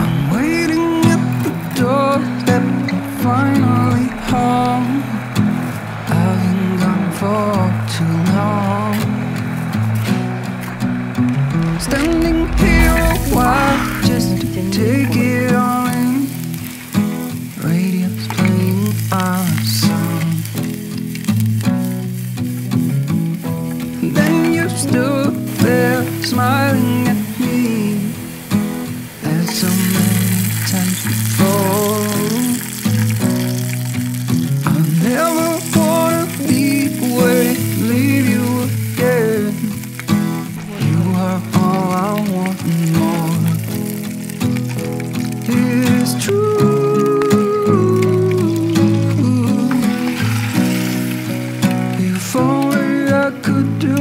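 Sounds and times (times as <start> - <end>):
food sizzling in a metal tin: 0.0 - 54.0
background music with bass line: 11.3 - 15.8.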